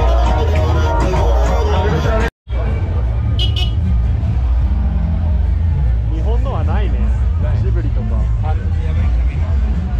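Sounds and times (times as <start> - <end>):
street market rumble: 0.0 - 9.9.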